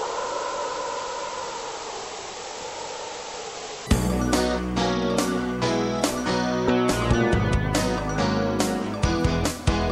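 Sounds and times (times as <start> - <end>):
television static hiss: 0.8 - 4.0.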